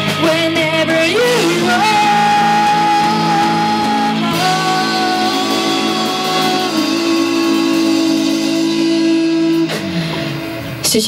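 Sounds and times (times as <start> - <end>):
rock band sustained chord: 0.0 - 11.0.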